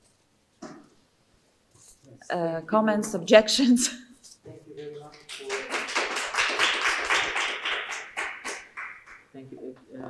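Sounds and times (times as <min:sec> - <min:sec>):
audience applauding: 0:04.8 - 0:09.3.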